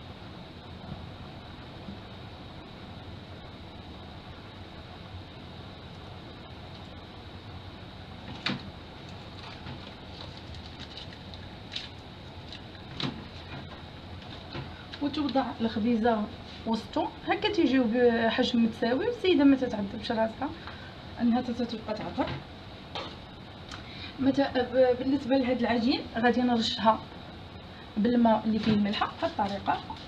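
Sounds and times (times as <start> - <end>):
faint high whine: 0.0 - 10.5
foil cups clicking and crinkling: 9.1 - 12.7.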